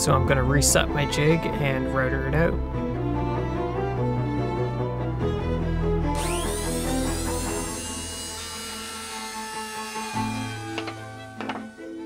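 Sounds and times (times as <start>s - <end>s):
string music: 0.0s - 12.0s
trim router whining: 6.1s - 12.0s.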